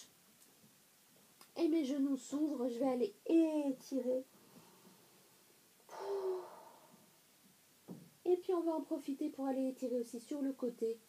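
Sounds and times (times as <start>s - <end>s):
intake of breath: 5.9s - 7.1s
woman exhaling: 5.9s - 7.1s.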